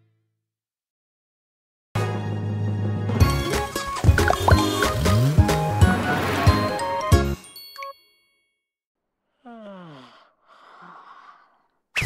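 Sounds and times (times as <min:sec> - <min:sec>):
cartoon song music: 0:03.2 - 0:07.3.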